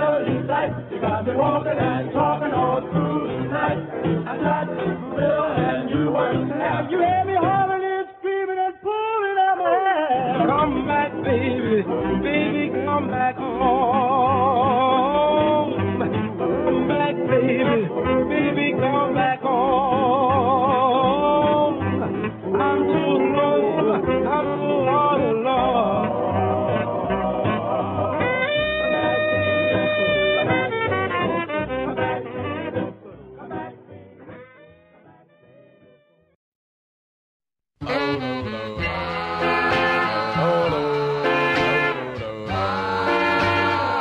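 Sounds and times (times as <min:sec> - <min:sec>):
vocal group singing in harmony: 0:00.0 - 0:08.2, 0:09.5 - 0:29.2, 0:31.5 - 0:34.2, 0:37.8 - 0:44.0
backing band: 0:21.2 - 0:33.0, 0:37.8 - 0:44.0.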